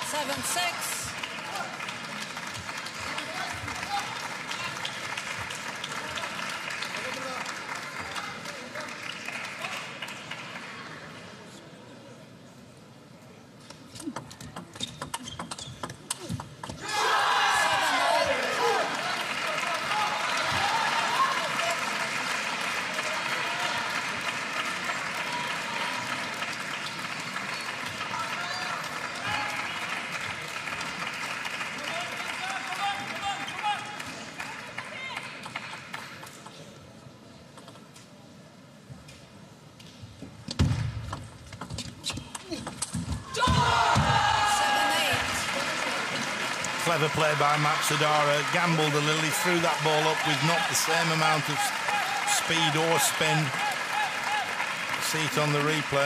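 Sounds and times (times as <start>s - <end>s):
crowd cheering and shouting: 16.8s - 21.8s, 43.2s - 46.0s, 46.8s - 56.0s.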